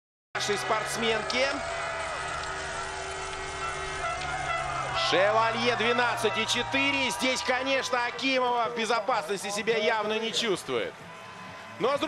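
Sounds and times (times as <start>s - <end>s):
crowd noise: 0.4s - 12.0s.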